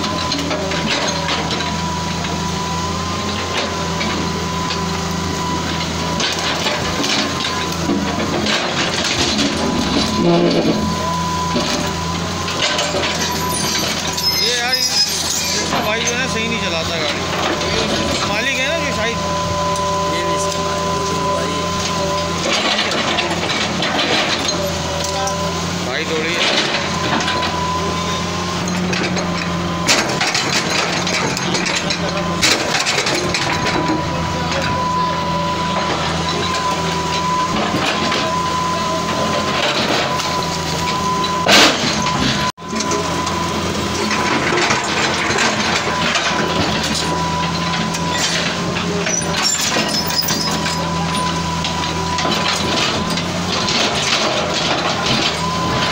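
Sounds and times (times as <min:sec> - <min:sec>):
excavator diesel engine whining: 0:00.0 - 0:55.9.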